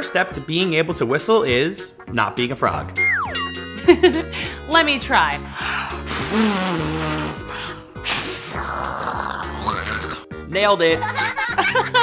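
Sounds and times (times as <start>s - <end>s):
background music: 0.0s - 12.0s
breathy rush of air: 4.2s - 4.7s.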